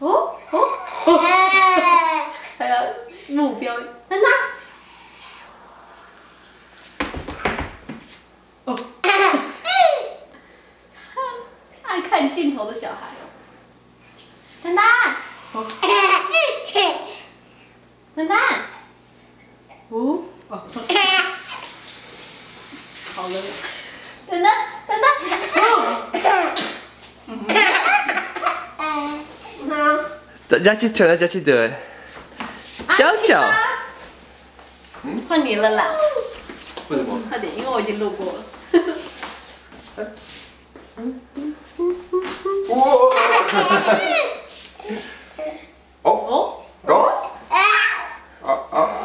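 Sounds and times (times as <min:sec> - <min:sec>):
baby laughing: 0:00.6 - 0:02.4, 0:09.0 - 0:10.2, 0:25.2 - 0:26.7, 0:27.5 - 0:29.3, 0:42.3 - 0:44.5.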